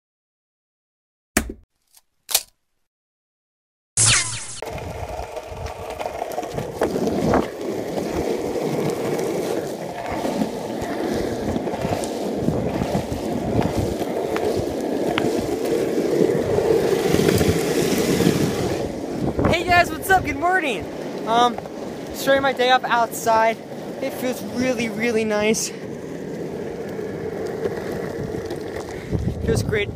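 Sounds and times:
longboard wheels rolling on asphalt: 4.6s - 29.9s.

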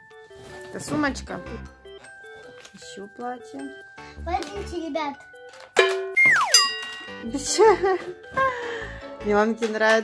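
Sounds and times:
background music: 0.0s - 10.0s
ringing chime-like notes: 6.1s - 7.4s
tone sliding down in pitch: 6.2s - 6.8s.

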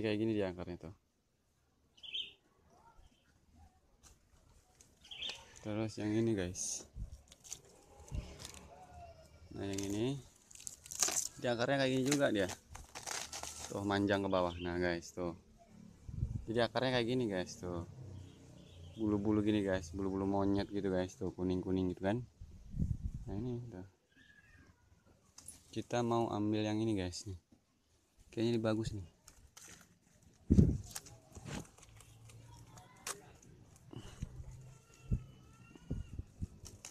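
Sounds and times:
faint clicks and rustles: 3.2s - 5.7s, 29.0s - 36.9s
leaves rustling: 4.0s - 14.5s, 28.8s - 36.9s.

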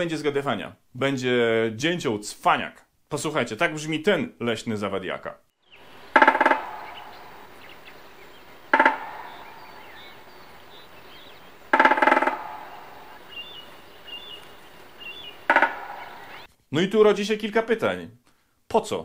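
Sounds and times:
faint bird chirps: 5.5s - 16.5s
woodpecker drumming on metal: 6.1s - 7.9s, 8.6s - 13.6s, 15.0s - 16.5s.

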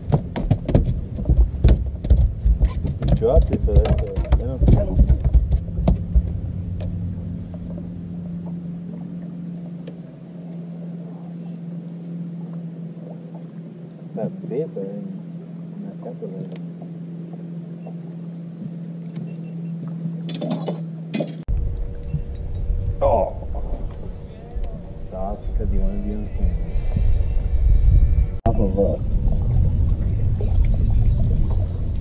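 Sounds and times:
boat motor humming: 0.0s - 32.0s.

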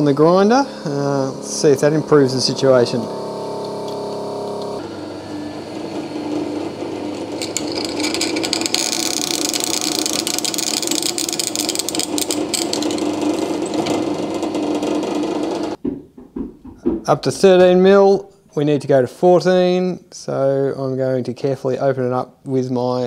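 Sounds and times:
drill press motor hum: 0.0s - 15.8s
drill grinding into steel: 0.9s - 15.8s.

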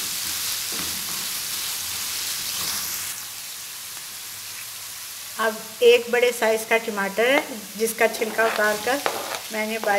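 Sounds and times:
meat sizzling in a frying pan: 0.0s - 9.9s.

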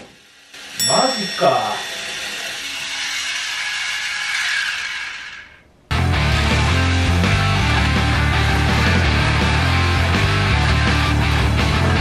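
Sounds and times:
toy car motor whirring: 2.0s - 5.6s.

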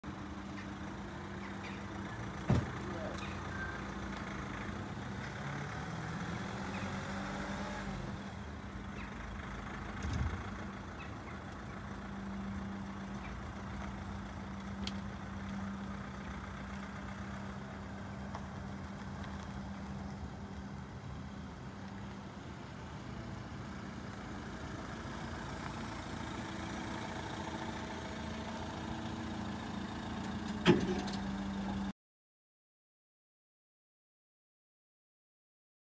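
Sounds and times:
diesel van engine running: 0.0s - 31.9s.

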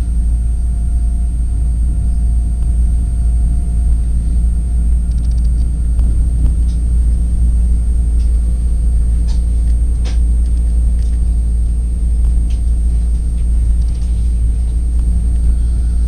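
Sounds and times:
faint steady hum: 0.0s - 16.0s
faint high ticks: 5.1s - 5.7s.

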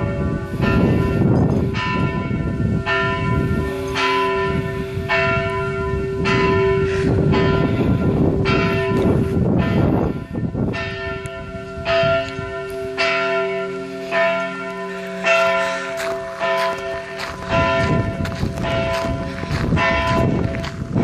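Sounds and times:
church bells ringing: 0.0s - 21.0s.

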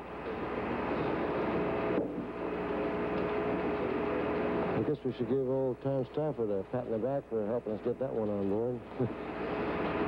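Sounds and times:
faint humming tones: 0.0s - 10.0s
radio static hiss: 0.3s - 10.0s.

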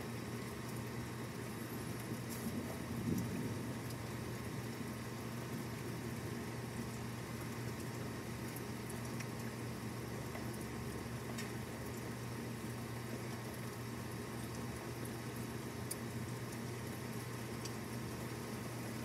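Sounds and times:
low steady hum: 0.0s - 19.0s
steady rain falling: 0.0s - 19.0s.

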